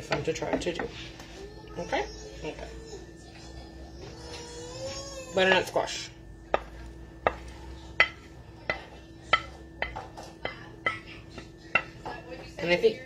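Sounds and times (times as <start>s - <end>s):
wooden spoon tapping a plate: 6.5s - 12.6s.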